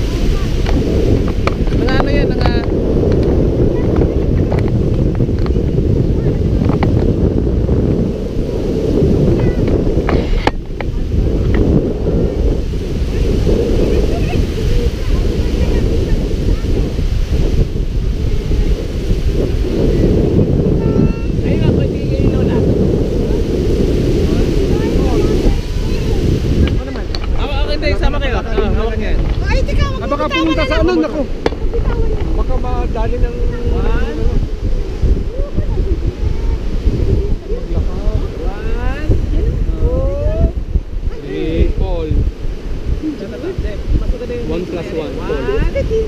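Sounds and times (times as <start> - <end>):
small waves washing on sand: 0.0 - 46.0
wind buffeting microphone: 0.0 - 46.0
voices calling out: 18.1 - 43.6.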